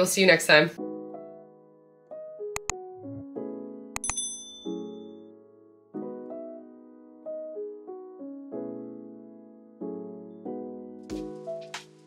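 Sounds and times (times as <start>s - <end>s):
soft piano music: 0.8s - 12.0s
click: 2.6s - 2.8s
bright bell ding: 4.0s - 5.2s.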